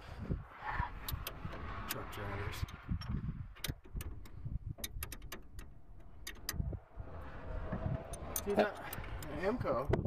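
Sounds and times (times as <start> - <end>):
ratchet wrench clicking: 2.6 - 6.6, 8.0 - 9.3.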